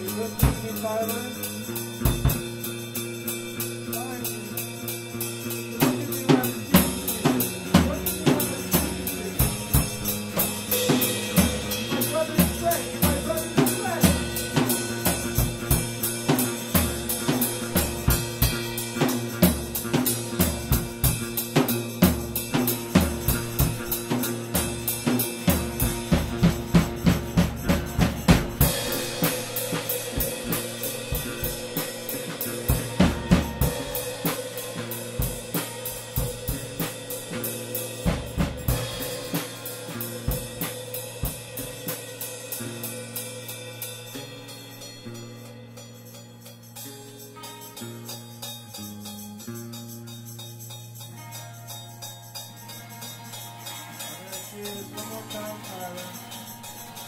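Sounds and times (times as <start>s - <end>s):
bass notes: 0.0s - 47.4s
cymbals: 0.0s - 57.0s
drum kit beat: 0.0s - 57.0s
held guitar notes: 0.0s - 57.0s.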